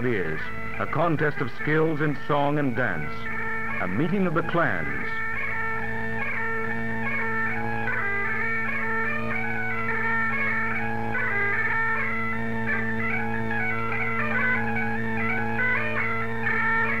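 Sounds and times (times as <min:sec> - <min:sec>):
bagpipes playing a quick tune: 0:00.0 - 0:17.0.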